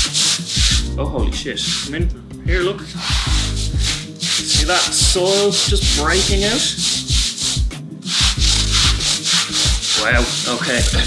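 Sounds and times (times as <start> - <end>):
brush scrubbing wet rug: 0.0 - 0.8, 3.0 - 11.0.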